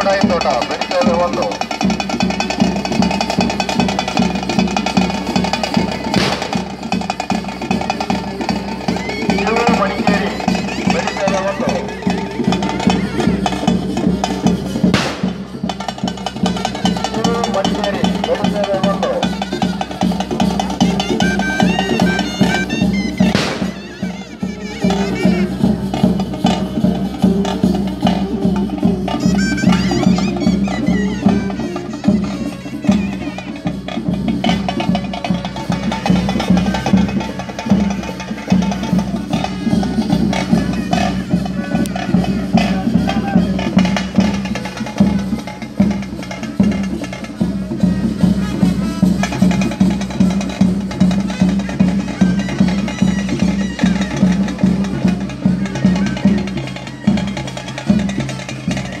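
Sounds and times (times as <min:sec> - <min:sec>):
drums beating: 0:00.0 - 0:59.0.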